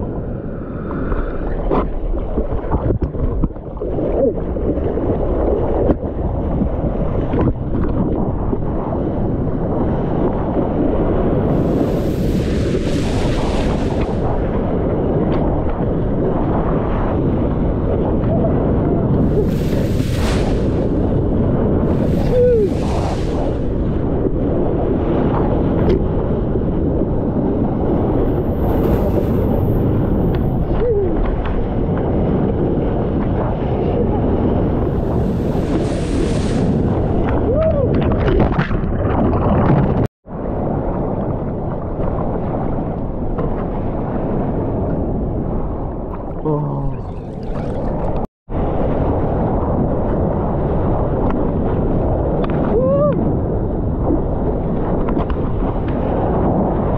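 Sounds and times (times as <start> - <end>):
wind rumble on microphone: 0.0 - 56.9
rushing water: 11.4 - 14.5, 19.1 - 24.4, 46.8 - 48.3.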